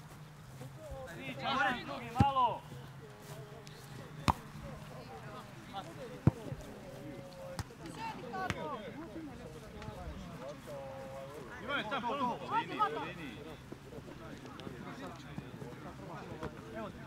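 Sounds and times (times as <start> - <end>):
football being kicked: 6.2 - 6.6.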